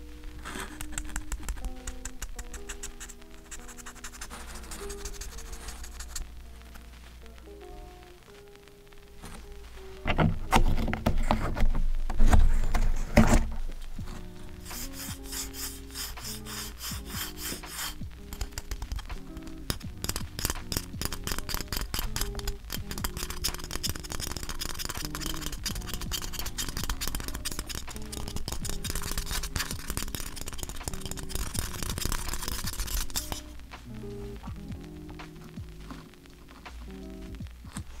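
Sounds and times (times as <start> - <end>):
lo-fi music: 0.0 - 38.0
keycaps clicking and rustling: 0.4 - 4.0, 18.3 - 33.4.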